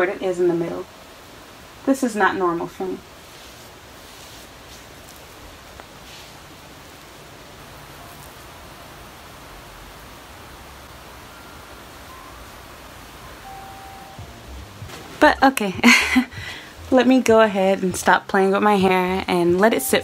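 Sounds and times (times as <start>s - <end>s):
low room noise hiss: 0.0s - 20.0s
faint rustling of wet hair: 1.8s - 12.4s.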